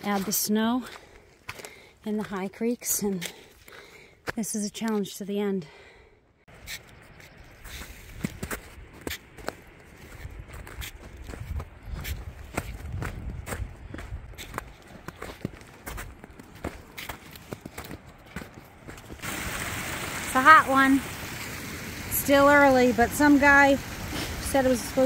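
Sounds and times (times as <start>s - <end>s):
footsteps on snow and dirt: 0.0s - 5.4s, 6.5s - 19.3s
wind: 0.0s - 25.0s.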